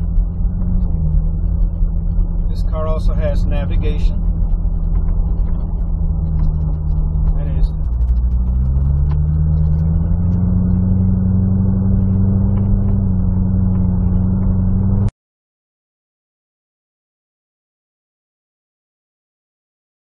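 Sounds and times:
car engine inside cabin: 0.0 - 15.1.

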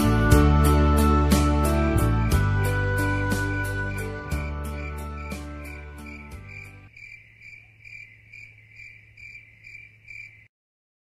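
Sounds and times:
insect chirping: 2.0 - 10.5.

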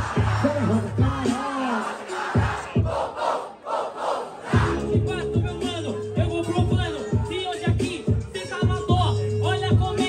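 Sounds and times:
hip-hop beat: 0.0 - 3.2, 4.5 - 10.0
crowd shouting and cheering: 0.0 - 10.0.

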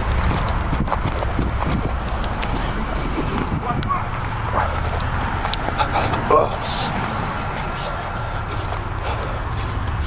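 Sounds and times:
grass rustling: 0.0 - 10.0
wind and handling noise: 0.0 - 10.0.

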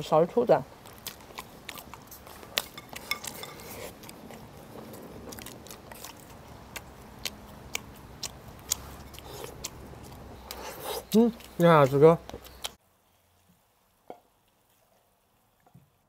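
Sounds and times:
chewing: 0.8 - 12.8.

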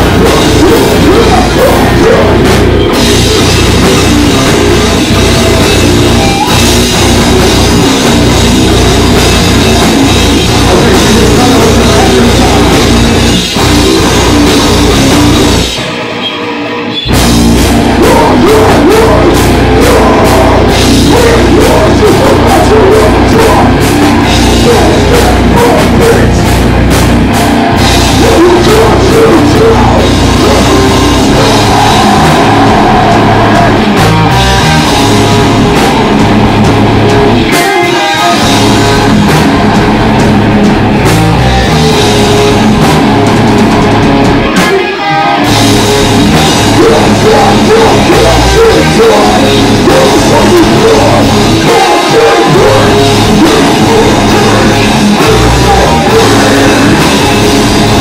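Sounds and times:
heavy metal band playing: 0.0 - 58.0
vocalist screaming: 28.2 - 34.0, 46.7 - 57.2.

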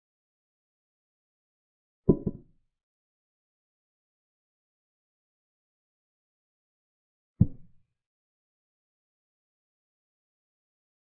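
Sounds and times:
wooden chess piece thud: 2.1 - 2.4.

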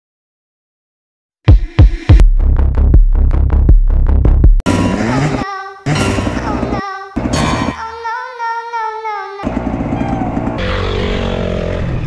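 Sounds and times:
dirt bike engines running: 9.4 - 12.0.

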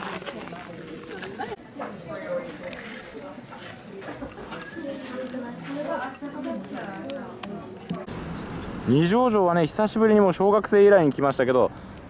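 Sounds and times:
faint background voices: 0.0 - 8.2.

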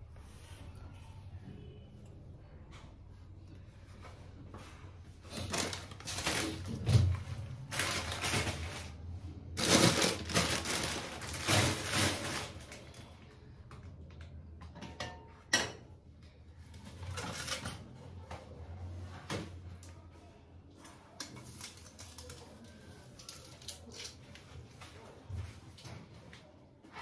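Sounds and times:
rustling and scraping: 2.8 - 12.9.

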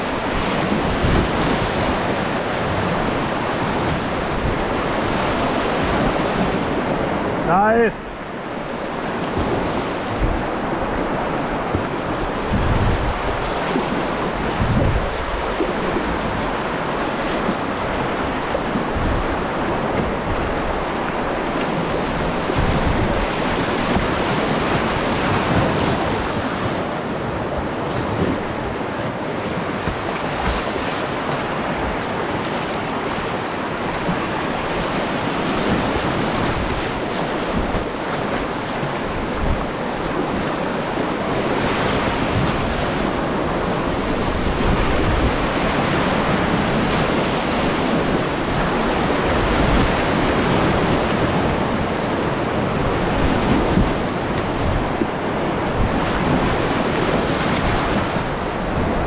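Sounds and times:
whitewater rapids roaring: 0.0 - 59.0.

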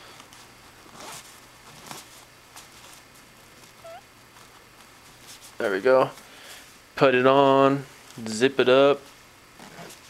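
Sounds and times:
dress zipper being pulled: 0.9 - 1.2, 9.6 - 9.9.

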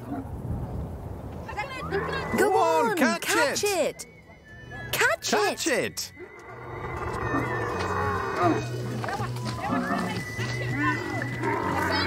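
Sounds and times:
camel bellowing: 6.2 - 12.0.

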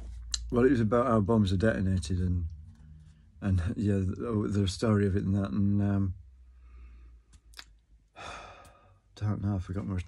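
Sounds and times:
man sighing: 8.2 - 8.9.

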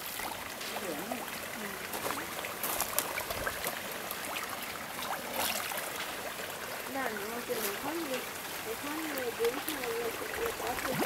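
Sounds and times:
water washing: 0.0 - 11.0
fish splashing at surface: 1.5 - 11.0.

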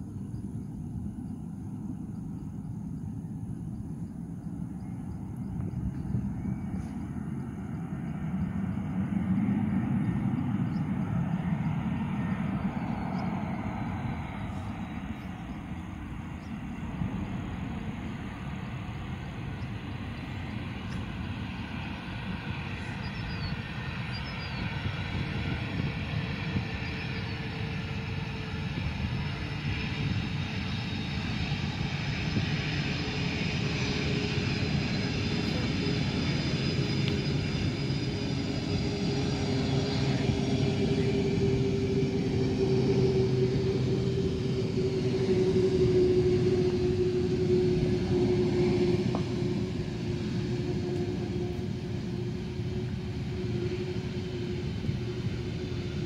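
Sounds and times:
jet engines roaring with whine: 0.0 - 56.0.

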